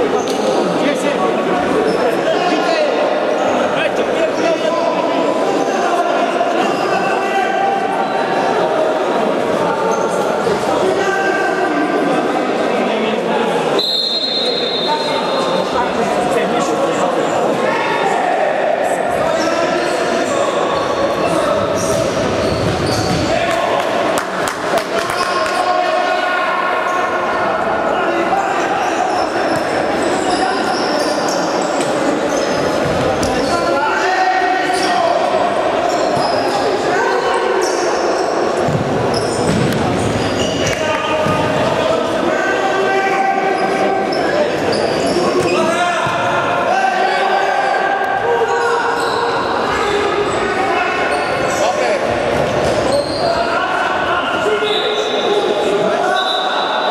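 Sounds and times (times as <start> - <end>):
ball kicked and bouncing in hall: 21.8 - 25.2, 32.8 - 33.4, 38.6 - 41.7.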